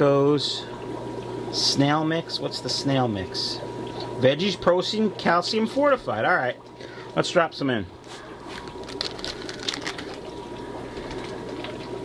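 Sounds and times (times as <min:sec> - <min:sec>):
background hum and whir: 0:00.0 - 0:12.0
plastic bag crinkling: 0:08.2 - 0:12.0.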